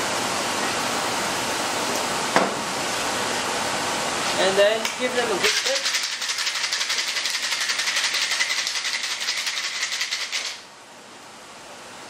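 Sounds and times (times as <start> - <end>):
ice rattling in cocktail shaker: 5.4 - 10.6.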